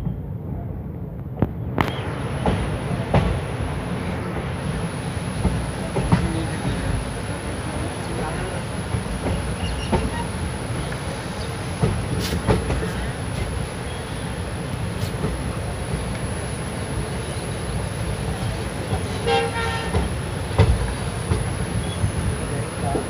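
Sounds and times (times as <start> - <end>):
train wheels rumbling on track: 0.0 - 23.0
rail joint clicks: 1.2 - 23.0
train horn toot: 19.1 - 20.1.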